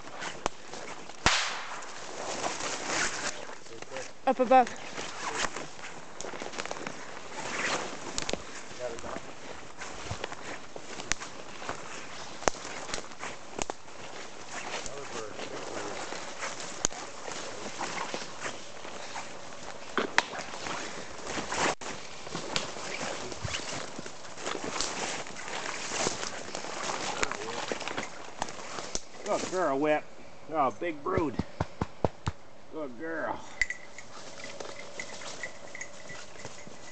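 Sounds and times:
footsteps through undergrowth: 0.0 - 30.0, 33.8 - 36.9
twigs and leaves crackling: 0.0 - 30.0, 33.7 - 36.9.

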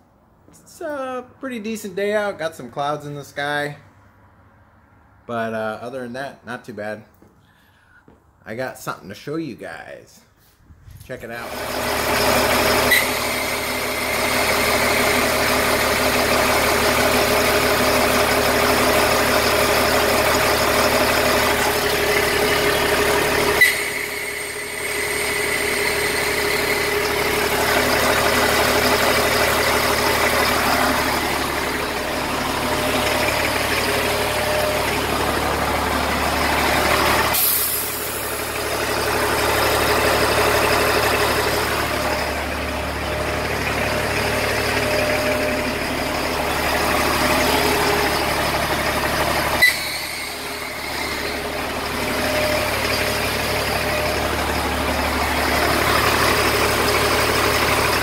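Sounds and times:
diesel truck engine idling: 11.2 - 58.0.

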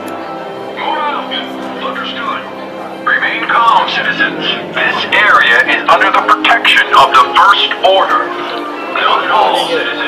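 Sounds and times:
background music: 0.0 - 10.0
voices: 0.7 - 10.0.

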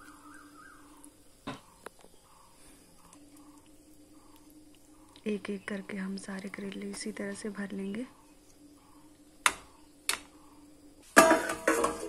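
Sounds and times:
metal plate clattering on pan: 11.2 - 12.0.

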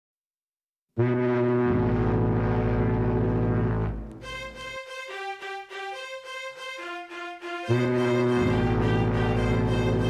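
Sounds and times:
ship's horn long low blast: 1.0 - 4.0, 7.7 - 10.0.

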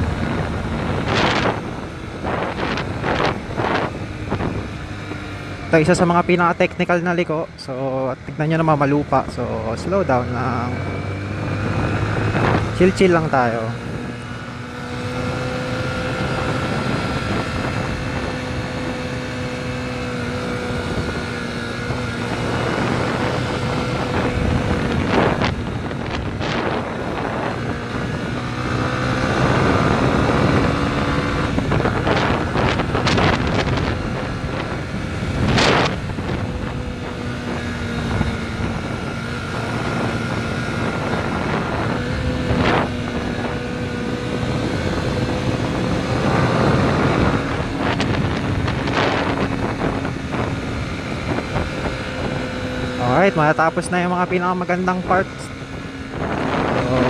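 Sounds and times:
wind noise on microphone: 0.0 - 7.2, 8.3 - 57.0
motorcycle engine cruising: 0.0 - 57.0.

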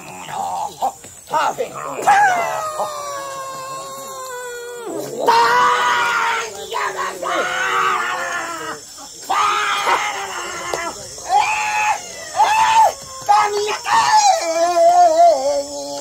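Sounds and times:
voices calling and shrieking: 0.0 - 16.0.

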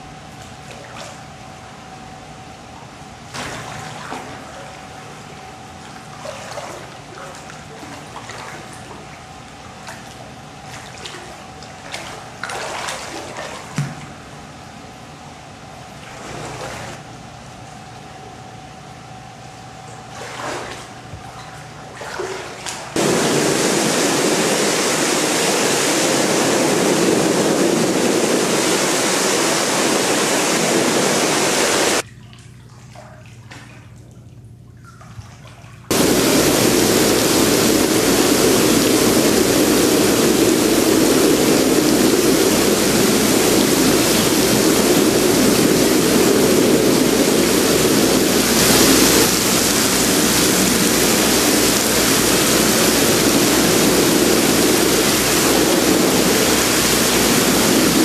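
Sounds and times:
whirlpool jets rushing water: 0.0 - 17.4, 19.6 - 34.0, 34.8 - 58.0.

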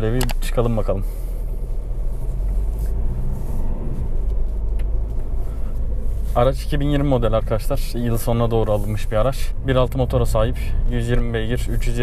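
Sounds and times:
car engine rumble and road noise: 0.0 - 12.0.

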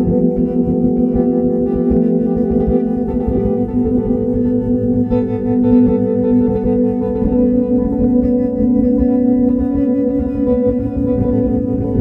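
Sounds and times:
guitar with effects ringing: 0.0 - 12.0.

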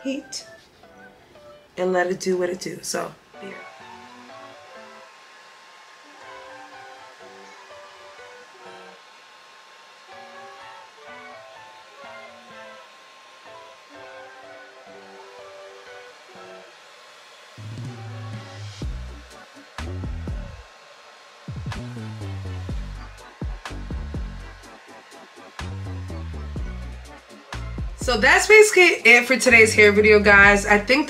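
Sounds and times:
hair dryer hissing: 0.6 - 31.0.

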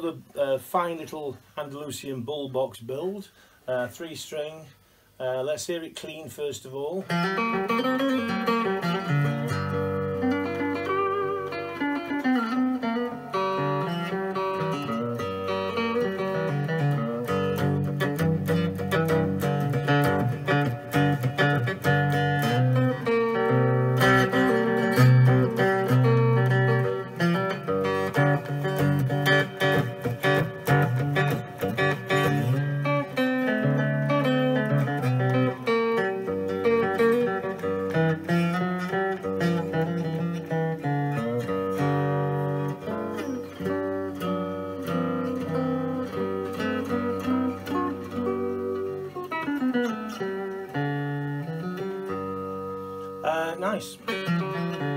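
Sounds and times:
clean electric guitar picking: 7.0 - 54.9.

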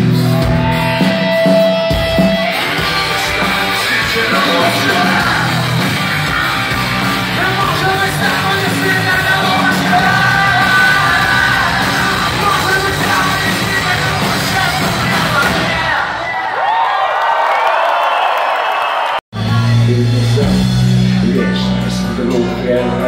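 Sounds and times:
crowd cheering and whooping: 0.0 - 1.8, 2.4 - 19.2
punk rock band playing: 0.0 - 16.3, 19.3 - 23.0
singer: 2.5 - 5.9, 7.3 - 16.5, 19.4 - 23.0.

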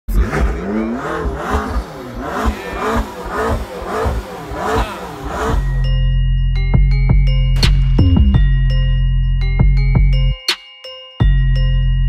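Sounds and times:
sports car engine revving: 0.1 - 6.0
music with low bass: 0.1 - 10.5, 11.2 - 12.0.

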